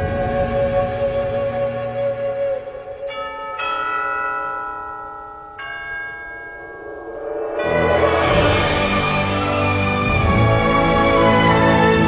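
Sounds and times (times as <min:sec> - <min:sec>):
deep bell ringing: 0:03.1 - 0:09.8.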